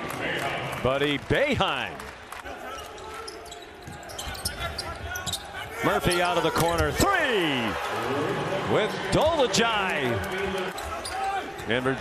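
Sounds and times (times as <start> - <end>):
faint players' voices: 1.0 - 12.0
sneaker squeaks: 2.8 - 7.0, 10.7 - 11.8.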